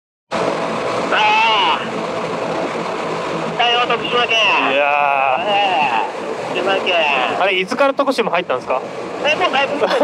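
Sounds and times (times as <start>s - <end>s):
wind rush on microphone: 0.3s - 10.0s.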